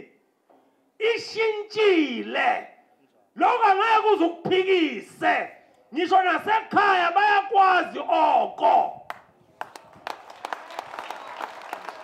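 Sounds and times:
crowd clapping: 9.1 - 12.0.

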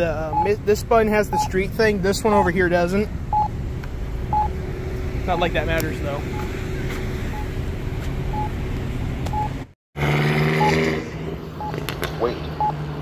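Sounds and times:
passing street traffic: 0.0 - 13.0
pedestrian signal beeps: 0.3 - 0.6, 1.3 - 1.6, 3.3 - 3.5, 4.3 - 4.5, 6.3 - 7.5, 8.3 - 8.6, 9.3 - 9.6.

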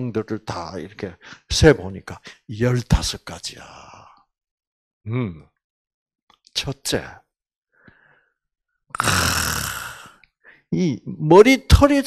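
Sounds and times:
man exhaling into microphone: 9.0 - 10.2.

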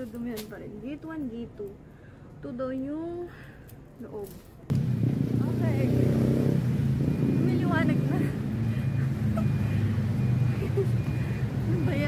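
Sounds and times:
vehicle engine running: 4.7 - 12.0.

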